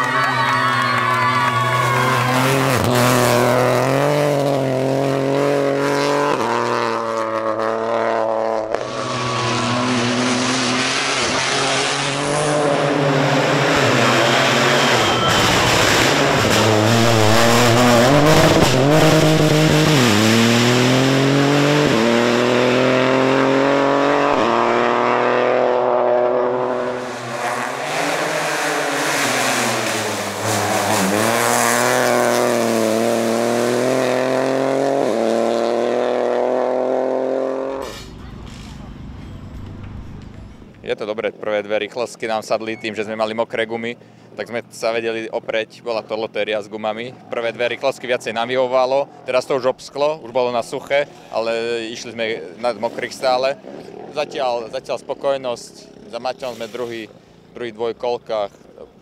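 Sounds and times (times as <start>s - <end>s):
rally car engine accelerating: 1.5s - 40.9s
engine crackling: 37.7s - 40.9s.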